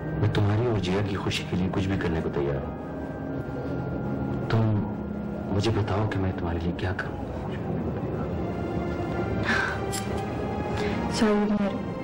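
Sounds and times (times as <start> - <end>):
drama background music: 0.0 - 12.0.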